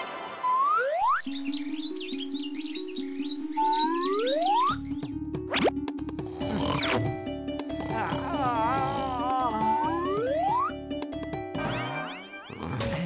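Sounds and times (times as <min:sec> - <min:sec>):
comic cartoon music: 0:00.0 - 0:13.0.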